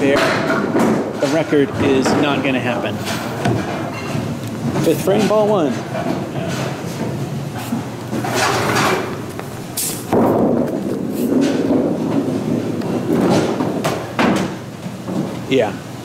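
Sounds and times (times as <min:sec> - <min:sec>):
bowling ball rolling: 0:00.0 - 0:15.5
bowling ball knocking on lane: 0:10.1 - 0:15.3.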